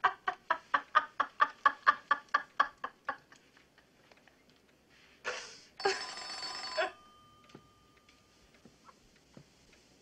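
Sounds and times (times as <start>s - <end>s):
telephone bell ringing: 5.8s - 8.5s.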